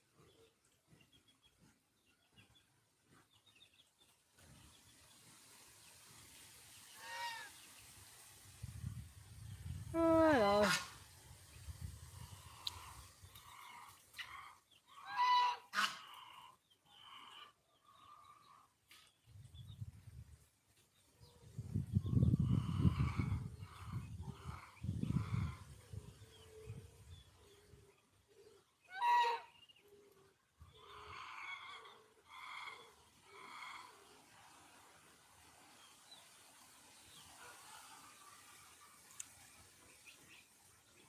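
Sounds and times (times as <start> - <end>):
chickens calling: 10.2 - 18.9, 21.5 - 34.6.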